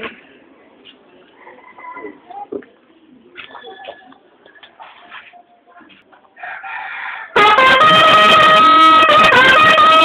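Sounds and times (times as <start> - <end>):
trumpet sustained note: 7.4 - 10.0.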